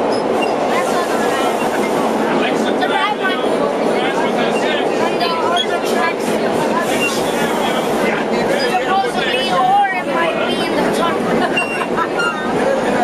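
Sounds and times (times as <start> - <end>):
subway train running: 0.0 - 13.0
voices chattering: 0.0 - 13.0.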